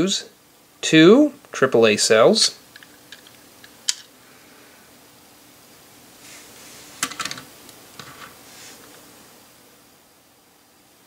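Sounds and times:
plastic toy clattering on tabletop: 7.0s - 8.4s.

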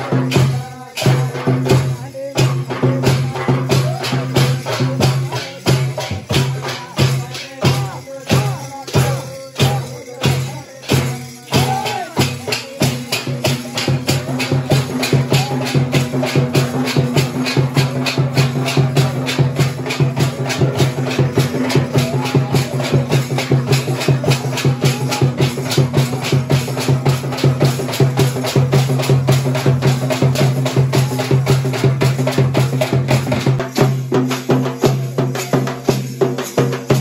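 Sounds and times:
folk drums and hand cymbals: 0.0s - 37.0s.

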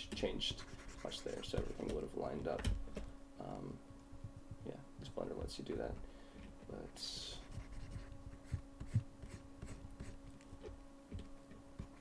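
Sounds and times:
steady low hum: 0.0s - 12.0s
faint scratching and ticking: 0.1s - 2.1s.

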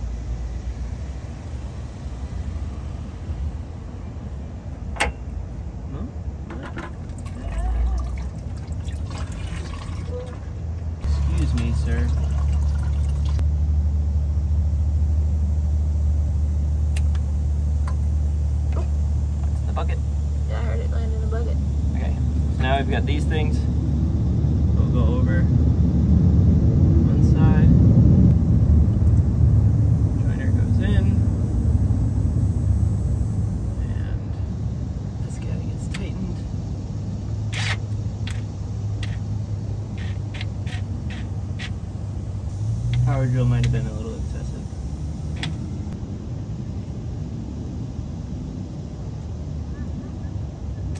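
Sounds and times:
engine idling hum: 0.0s - 50.9s.

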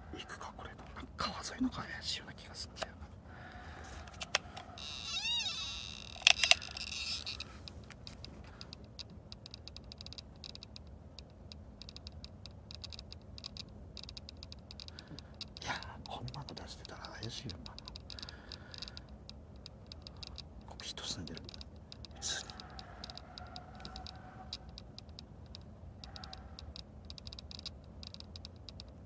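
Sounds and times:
faint rapid ticking: 6.0s - 29.0s.

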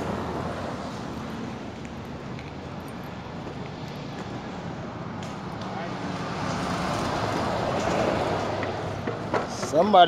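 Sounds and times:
road vehicle passing: 0.0s - 10.0s.

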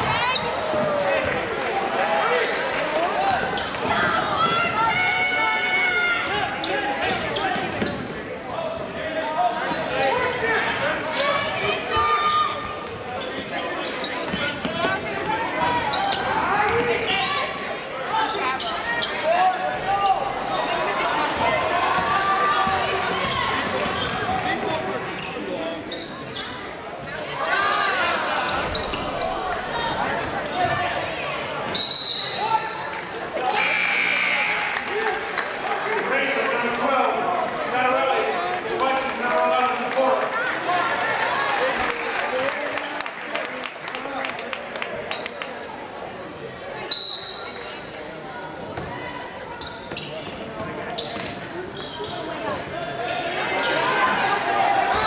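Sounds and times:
short high whistle: 33.5s - 34.7s.

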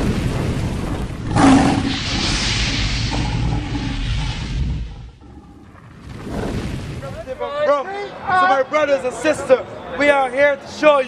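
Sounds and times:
steady low rumble: 0.0s - 6.2s
lion roaring: 1.2s - 5.8s
hiss: 1.3s - 5.2s.

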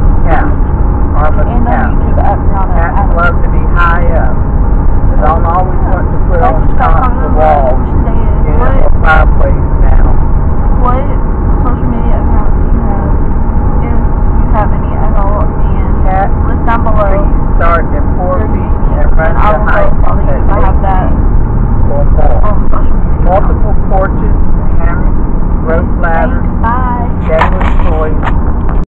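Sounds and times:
road and engine rumble in car: 0.0s - 28.9s
people talking: 0.2s - 0.6s, 1.2s - 4.4s, 5.1s - 10.2s, 10.8s - 13.2s, 13.8s - 21.2s, 21.9s - 28.3s.

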